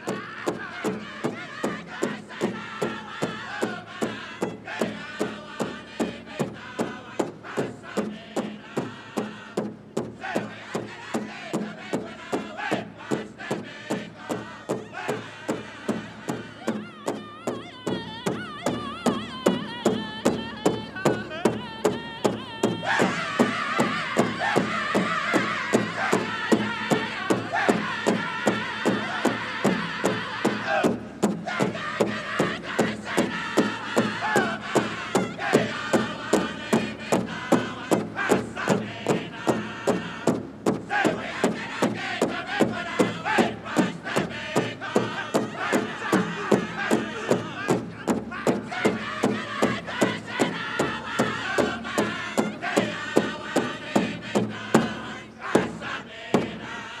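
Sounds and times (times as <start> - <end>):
steady beat on large drum: 0.0 - 56.8
drum group singing: 0.0 - 57.0
women singing high: 0.0 - 57.0.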